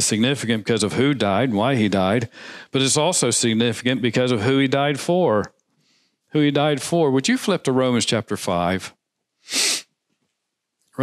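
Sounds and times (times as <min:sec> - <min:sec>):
person breathing hissily: 0:02.3 - 0:02.8, 0:09.5 - 0:09.9.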